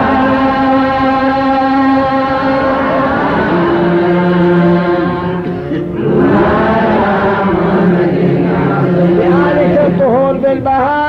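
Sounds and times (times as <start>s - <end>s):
men singing devotional chant: 0.0s - 11.0s.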